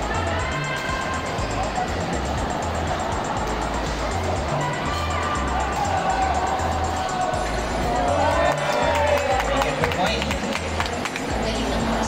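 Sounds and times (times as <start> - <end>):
crowd voices: 0.0 - 12.0
music with pulsing bass beat: 0.0 - 12.0.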